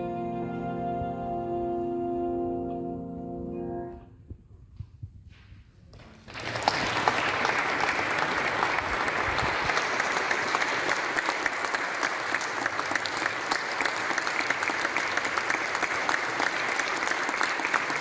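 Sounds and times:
audience applauding: 0:06.0 - 0:18.0.

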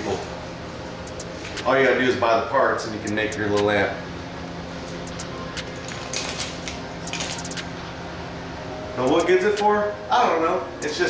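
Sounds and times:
steady low hum: 0:00.0 - 0:11.0
circuit boards clicking on glass: 0:01.0 - 0:01.7, 0:05.0 - 0:07.7.

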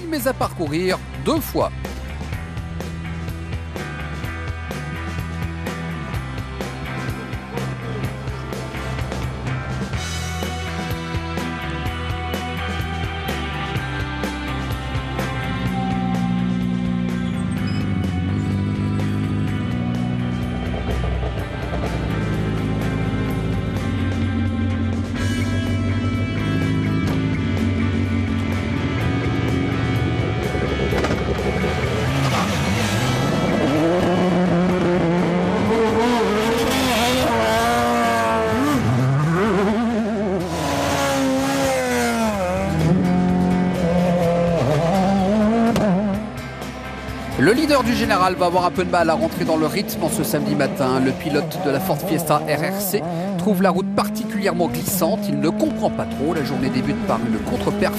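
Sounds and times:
background music: 0:00.0 - 0:57.9
rally car engines revving: 0:00.0 - 0:57.9.

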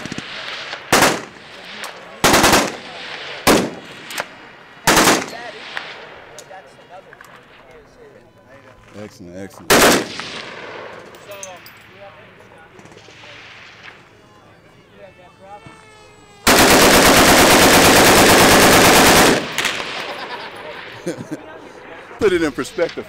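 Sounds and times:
automatic gunfire: 0:00.0 - 0:01.4, 0:02.2 - 0:06.0, 0:09.7 - 0:11.1, 0:16.4 - 0:20.3
gunfire echo: 0:00.0 - 0:06.4, 0:09.7 - 0:12.0, 0:16.5 - 0:20.4.

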